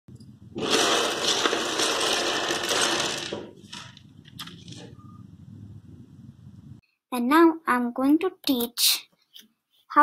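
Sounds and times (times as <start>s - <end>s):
plastic building blocks clattering: 0.5s - 4.9s.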